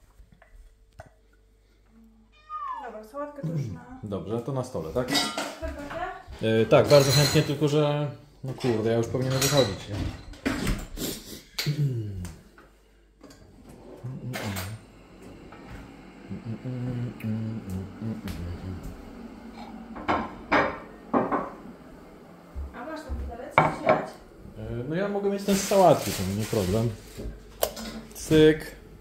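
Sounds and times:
dishes and cutlery clinking: 5.0s - 5.6s, 6.7s - 7.8s, 8.4s - 11.0s, 27.6s - 28.2s.

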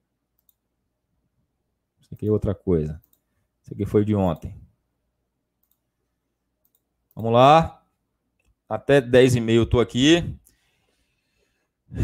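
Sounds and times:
faint computer clicks: 0.4s - 0.6s, 3.0s - 3.3s, 5.6s - 5.9s, 6.6s - 7.4s.

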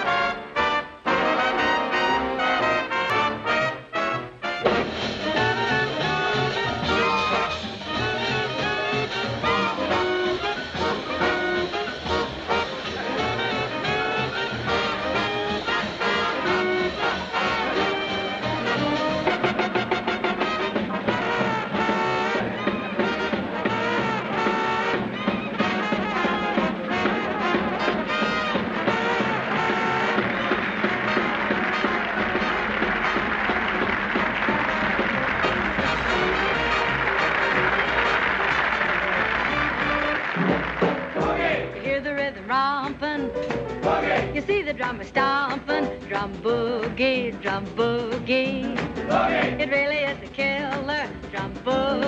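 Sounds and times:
trumpets and trombones: 0.0s - 42.0s, 43.7s - 44.4s, 49.0s - 49.6s
big band playing swing: 0.0s - 52.0s.

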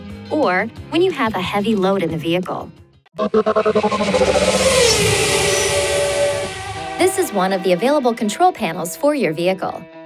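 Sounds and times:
held musical tones: 3.1s - 8.0s
falling tone: 3.2s - 7.6s
rushing whoosh: 3.4s - 7.5s.

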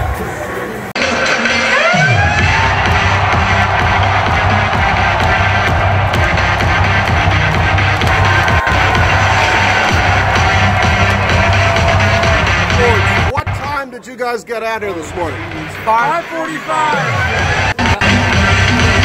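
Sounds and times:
electronic music with bass line: 1.0s - 13.8s, 14.9s - 19.0s.

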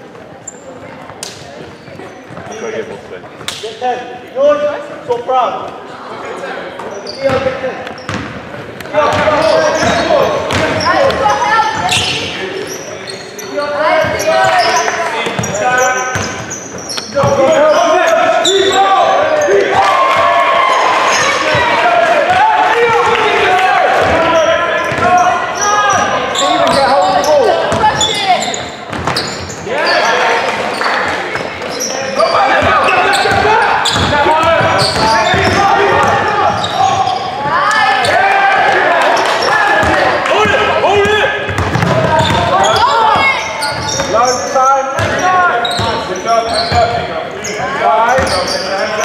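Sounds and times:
basketball bouncing on wooden court: 7.3s - 8.4s, 9.1s - 12.2s, 15.2s - 17.5s, 24.0s - 25.2s, 26.6s - 29.5s, 32.6s - 37.2s, 39.8s - 44.2s, 45.0s - 46.0s
people shouting: 17.4s - 28.5s, 32.3s - 41.4s.

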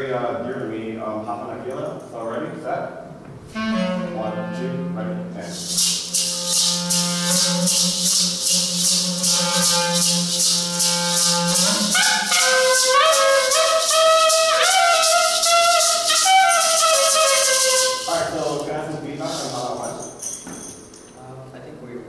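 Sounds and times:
clarinet melody: 3.4s - 18.3s
low held note: 3.5s - 18.2s
maracas shaking: 5.5s - 21.1s.

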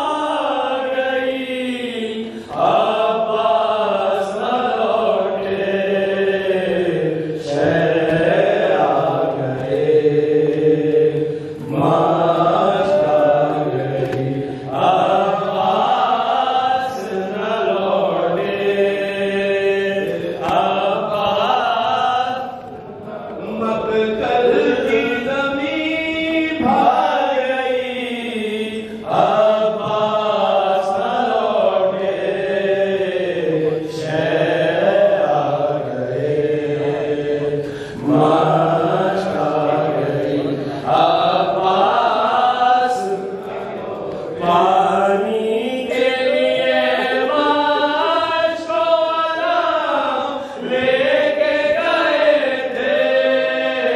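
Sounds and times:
person chanting a recitation: 0.0s - 53.9s.

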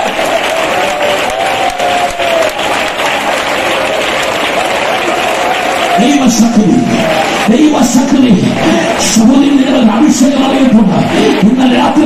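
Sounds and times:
congregation clapping: 0.0s - 12.0s.

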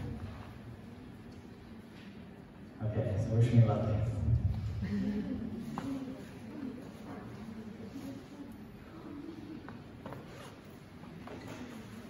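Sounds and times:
room noise: 0.0s - 12.0s
soft footsteps: 9.5s - 12.0s.

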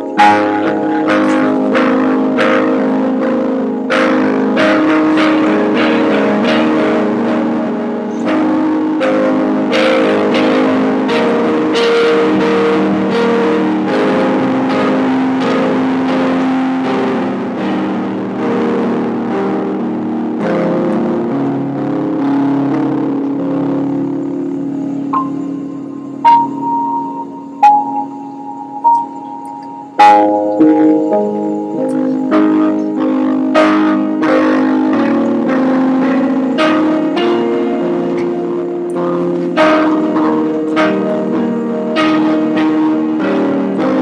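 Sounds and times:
recorded song with steady beat: 0.0s - 44.0s.

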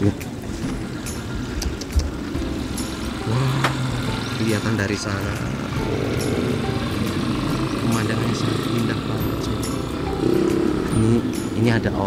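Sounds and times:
motorcycle low rumble: 0.0s - 12.0s.

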